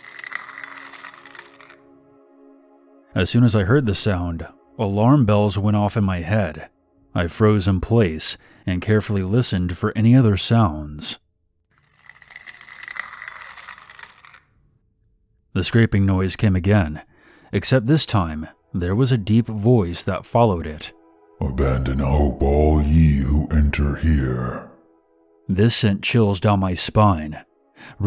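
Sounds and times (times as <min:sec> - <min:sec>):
low ambient music drone: 0:00.0 - 0:08.2, 0:16.7 - 0:28.0.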